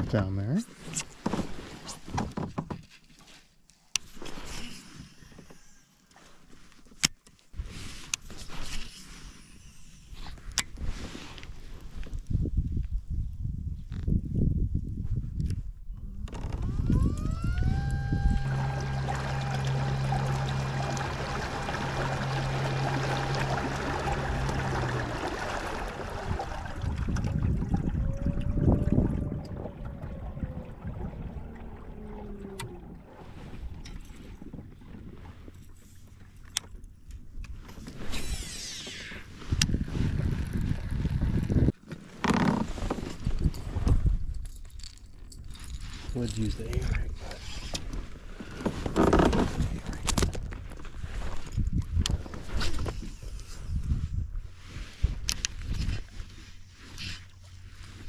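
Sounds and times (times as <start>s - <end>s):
electric motor whine: 16.2s - 26.6s.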